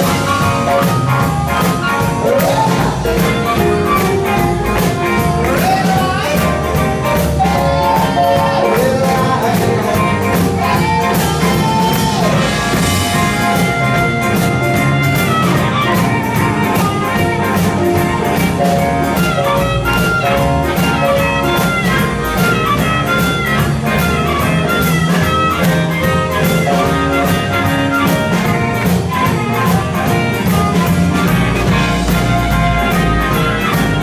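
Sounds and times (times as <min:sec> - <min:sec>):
amplified harmonica: 0:00.0 - 0:34.0
drum kit beat: 0:00.0 - 0:34.0
electric guitar: 0:00.0 - 0:34.0.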